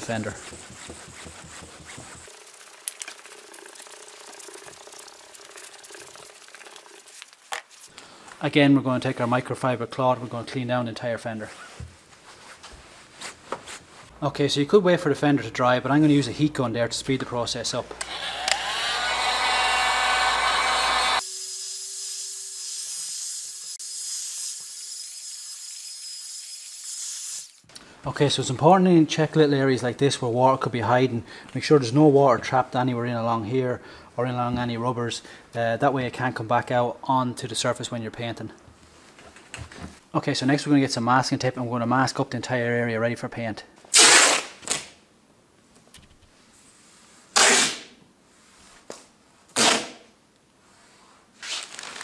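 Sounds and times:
wet sandpaper rubbing on paint: 0.0s - 2.6s
heat gun blowing air: 18.0s - 21.4s.

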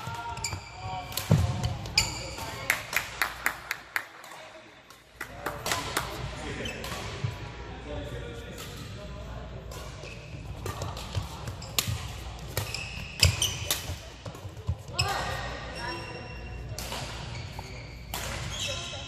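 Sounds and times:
rackets hitting shuttlecock: 9.6s - 14.6s, 16.7s - 17.3s, 18.0s - 18.8s.

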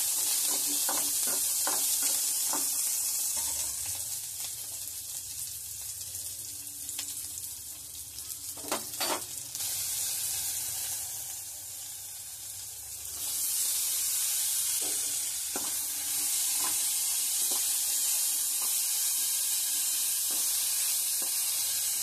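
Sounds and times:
vegetables sizzling in hot oil: 0.0s - 22.0s
spoon knocking against pan: 0.4s - 2.7s.

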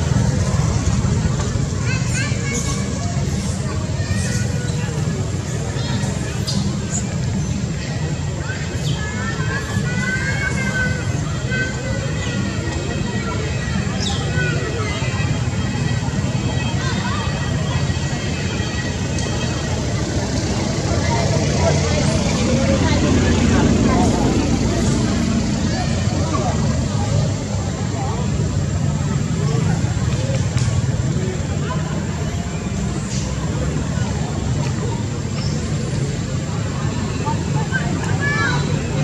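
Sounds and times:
distant traffic rumble: 0.0s - 39.0s
faint indistinct voices: 0.0s - 39.0s.

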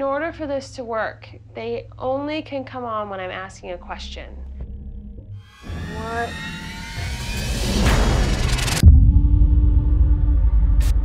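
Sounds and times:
short rising pitched sweep: 4.5s - 9.3s
rising whoosh riser: 4.6s - 11.0s.

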